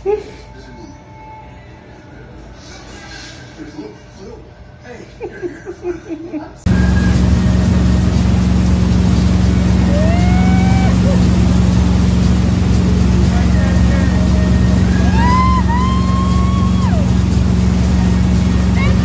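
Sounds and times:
boat engine running: 6.7 - 19.0
rush of boat wake: 6.7 - 19.0.

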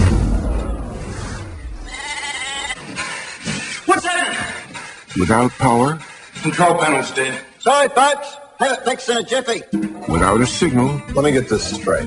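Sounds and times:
sheep bleating: 1.8 - 2.8.

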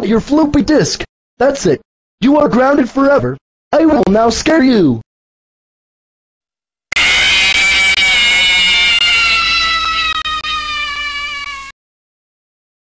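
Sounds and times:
harsh buzzing tone falling in pitch: 6.9 - 11.7.

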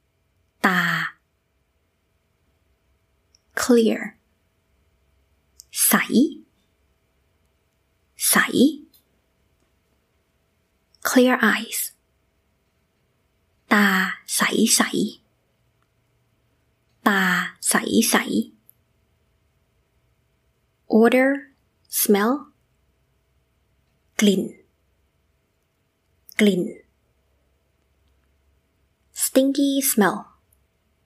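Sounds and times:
woman speaking: 0.6 - 1.2, 3.5 - 4.2, 5.6 - 6.5, 8.2 - 9.0, 11.0 - 12.0, 13.7 - 15.2, 17.0 - 18.6, 20.9 - 22.6, 24.2 - 24.7, 26.3 - 26.9, 29.2 - 30.4.

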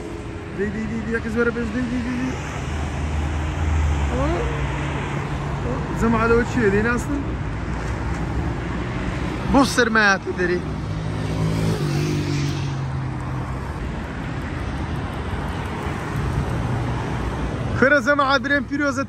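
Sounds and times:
road traffic rumble: 0.0 - 19.0.

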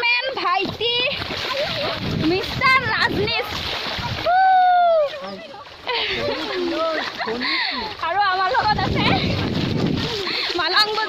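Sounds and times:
splashing in muddy water: 0.0 - 11.0.

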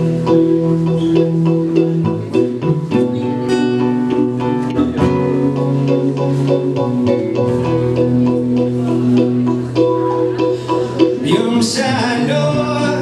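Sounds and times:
acoustic guitar: 0.0 - 13.0
synthesizer keyboard notes: 0.0 - 13.0.

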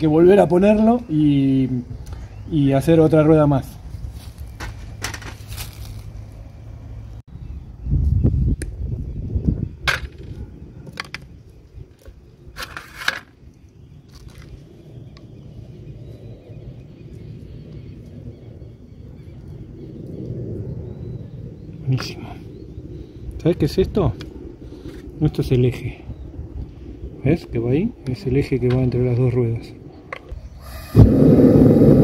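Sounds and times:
low rumble: 13.4 - 32.0.

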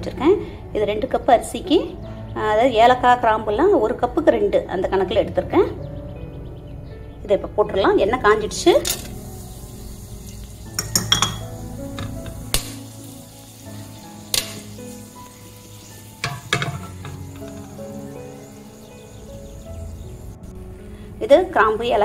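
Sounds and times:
spices sizzling in hot oil: 8.3 - 21.0
spices popping: 8.4 - 20.7.

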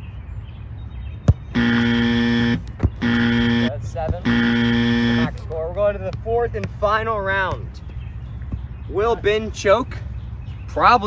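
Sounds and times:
buzzer blasts: 1.5 - 5.4.

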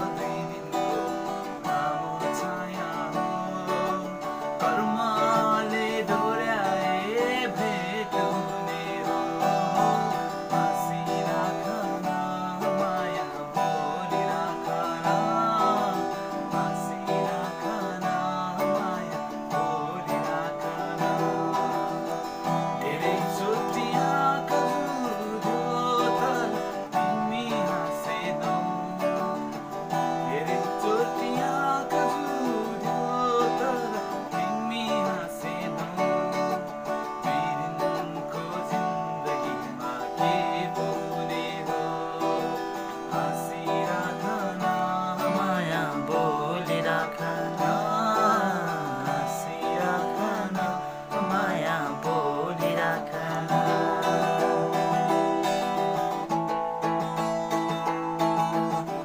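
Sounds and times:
guitar strumming: 0.0 - 59.0
man singing: 0.0 - 59.0.

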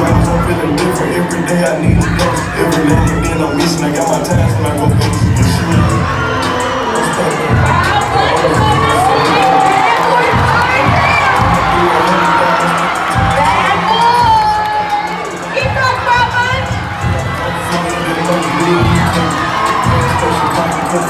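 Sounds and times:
crowd cheering and shouting: 0.0 - 21.0
high-pitched yells and whoops: 5.8 - 16.7.

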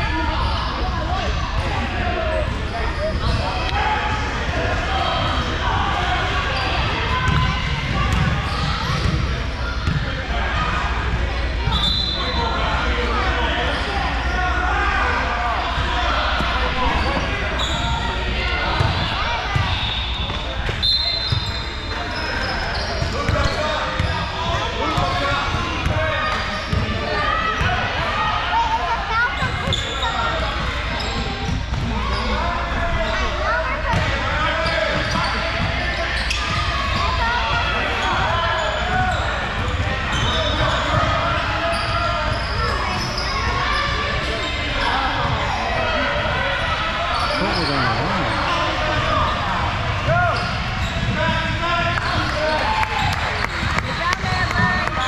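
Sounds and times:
spectators chatter: 0.0 - 55.0
shoe squeaks: 11.7 - 12.4, 16.4 - 24.4, 29.4 - 30.4, 41.6 - 45.0, 47.0 - 49.4.

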